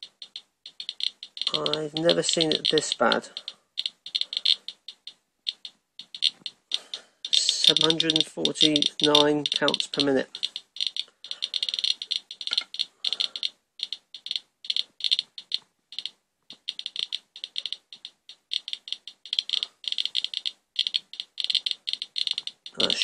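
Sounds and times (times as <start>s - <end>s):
geiger counter clicking rapidly: 0.0s - 23.0s.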